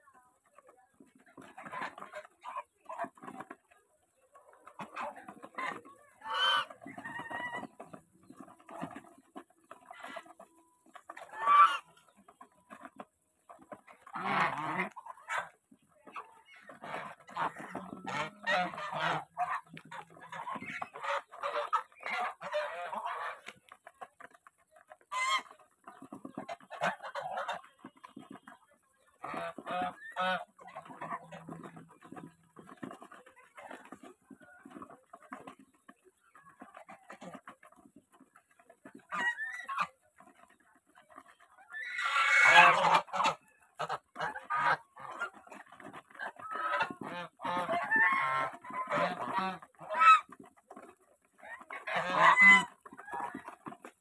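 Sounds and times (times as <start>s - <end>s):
geese pecking grain: 0.0s - 54.0s
geese honking: 1.2s - 23.7s, 24.8s - 35.6s, 41.6s - 50.4s, 51.4s - 54.0s
geese low chattering calls: 4.2s - 8.8s, 9.9s - 12.2s, 13.8s - 23.6s, 41.6s - 45.6s, 51.4s - 54.0s.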